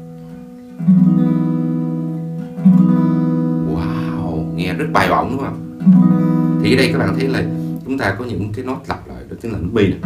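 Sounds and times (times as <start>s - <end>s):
acoustic guitar chords strummed: 0.0s - 8.5s.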